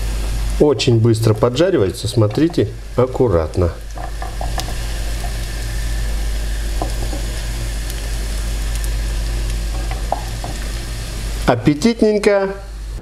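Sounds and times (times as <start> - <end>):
low hum: 0.0 - 11.6
food sizzling in oil: 0.0 - 13.0
spatula and fork tapping: 0.8 - 2.7, 3.9 - 5.5, 6.8 - 7.4, 9.7 - 10.8.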